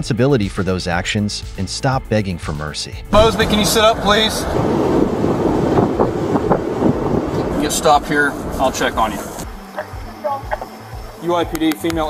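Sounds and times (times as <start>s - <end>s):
microphone rumbling and rustling: 3.1s - 10.6s.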